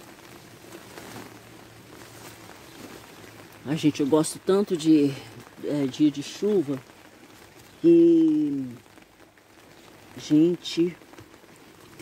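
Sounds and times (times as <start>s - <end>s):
light rain falling: 0.0s - 12.0s.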